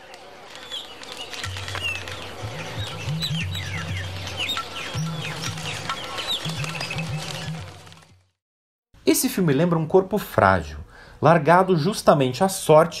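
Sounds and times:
birds chirping and whistling: 0.0 - 8.0
low sustained music notes: 1.4 - 8.0.

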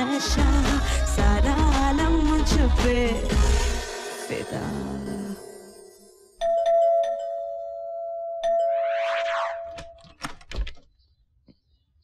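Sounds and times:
dance song: 0.0 - 5.4
two-tone doorbell chime: 6.4 - 9.0.

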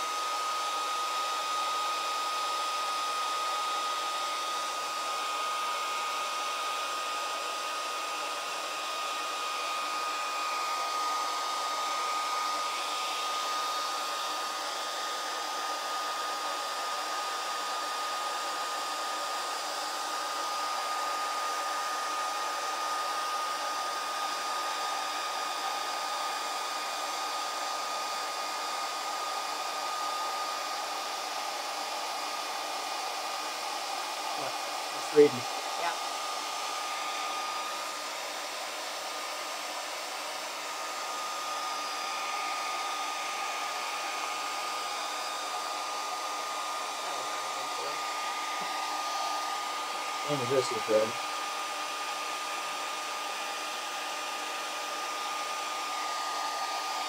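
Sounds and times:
hair dryer running: 0.0 - 57.0.

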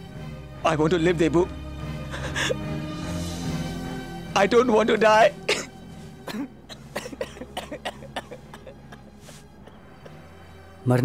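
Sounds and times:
man sobbing: 2.0 - 2.7, 6.3 - 10.2.

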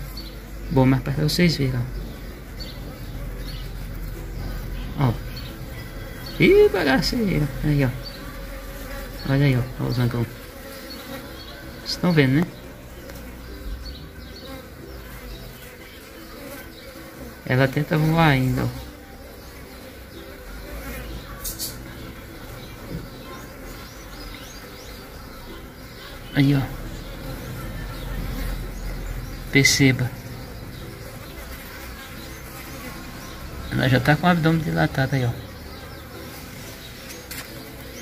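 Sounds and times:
bees buzzing in flight: 0.0 - 38.0.

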